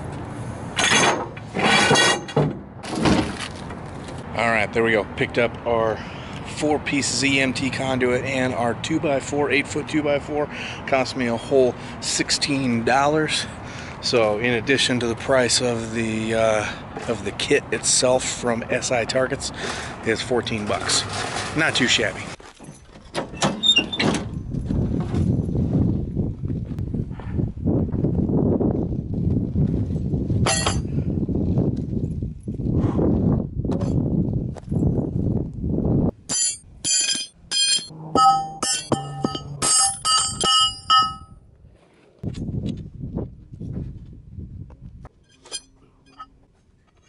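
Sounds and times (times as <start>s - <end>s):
metal parts clanking: 0.8s - 2.4s, 30.5s - 30.9s, 36.3s - 41.3s, 45.3s - 46.3s.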